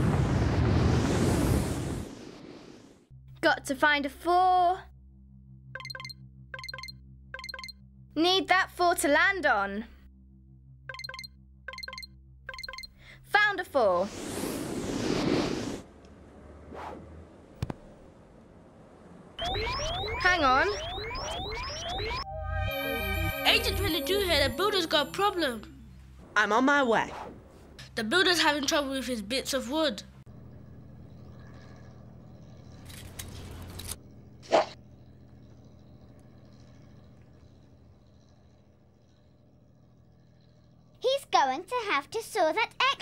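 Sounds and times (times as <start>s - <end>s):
low hum: 3.0s - 13.3s, 15.7s - 28.8s, 30.0s - 41.4s
faint swish: 14.0s - 18.1s.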